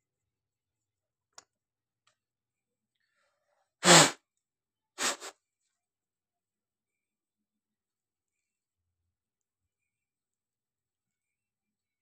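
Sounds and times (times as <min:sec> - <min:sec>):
person sneezing: 0:03.8 - 0:04.2, 0:05.0 - 0:05.3
weak double burst of breath: 0:03.8 - 0:04.2, 0:05.0 - 0:05.3.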